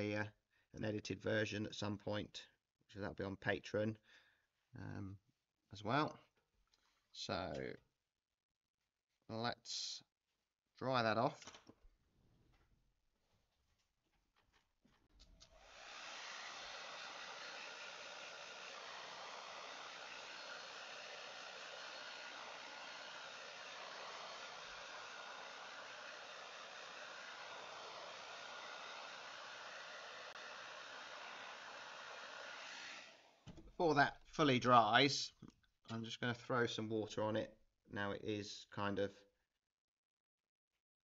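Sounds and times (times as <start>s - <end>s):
hair dryer blowing: 15.2s - 33.7s.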